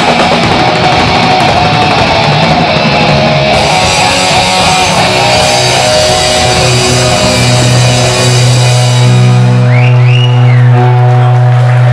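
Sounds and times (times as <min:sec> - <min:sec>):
live rock band: 0:00.0 - 0:11.9
low guitar chord ringing: 0:03.5 - 0:10.0.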